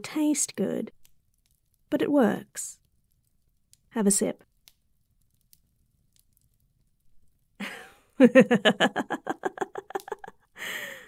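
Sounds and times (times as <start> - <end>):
rapid pulsing laughter: 8.3 - 10.3.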